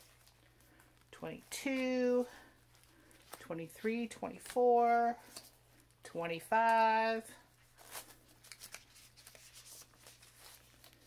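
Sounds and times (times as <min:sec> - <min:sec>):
paper rustling: 0:07.7 - 0:11.0.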